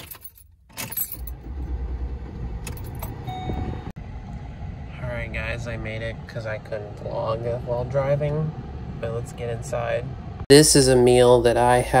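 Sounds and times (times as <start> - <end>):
keys jangling: 0.0 - 1.4
car engine starting and idling: 0.0 - 10.9.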